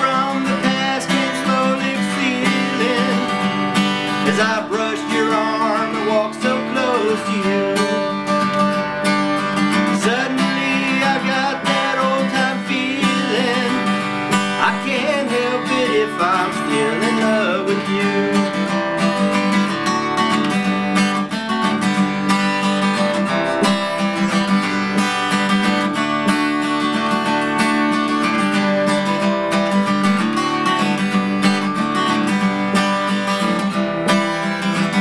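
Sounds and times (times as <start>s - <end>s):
out of tune acoustic guitar strumming: 0.0s - 35.0s.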